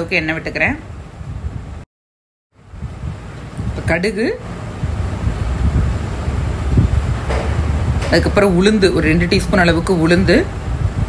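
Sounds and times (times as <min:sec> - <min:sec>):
low rumble: 0:02.6 - 0:11.0.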